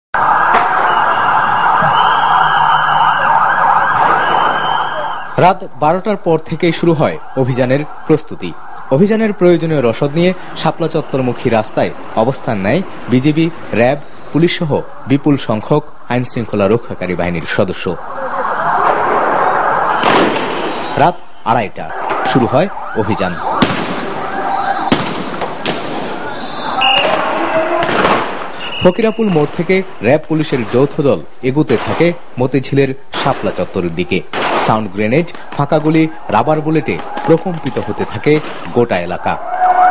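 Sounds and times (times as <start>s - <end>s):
police siren: 0.2s - 5.6s, 6.4s - 13.1s, 14.0s - 15.4s, 17.4s - 30.0s, 35.4s - 39.9s
voices in street clash: 0.2s - 32.4s, 33.0s - 39.9s
sound grenade bangs: 3.8s - 5.2s, 19.0s - 21.0s, 23.6s - 30.6s
gunfire bangs: 3.9s - 4.6s, 20.0s - 20.8s, 23.6s - 28.6s, 29.2s - 29.9s, 31.6s - 32.2s, 34.3s - 35.7s, 36.9s - 38.8s.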